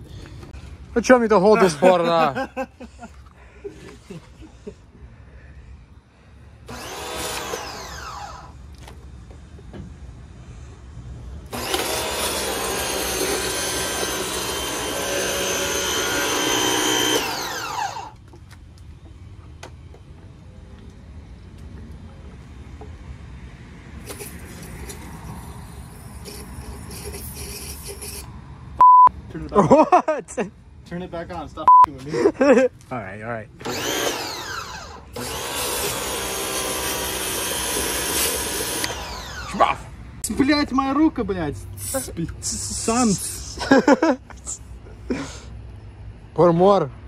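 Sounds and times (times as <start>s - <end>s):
electric pressure washer running: 6.7s - 8.5s, 11.5s - 18.2s, 33.6s - 39.6s
motor spinning down: 6.7s - 8.6s, 11.5s - 18.2s, 33.6s - 39.6s.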